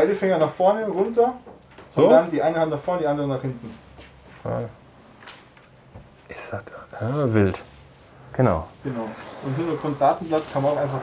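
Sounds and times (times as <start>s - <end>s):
faint breathy hiss: 6.3s - 11.0s.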